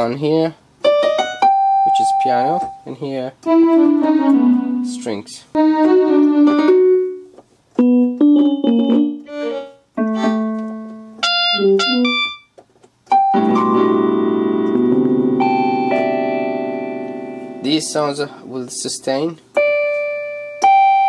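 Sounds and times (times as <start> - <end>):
keyboard piano notes and chords: 0.8 - 21.0
keyboard string chord: 0.9 - 12.4, 13.1 - 21.0.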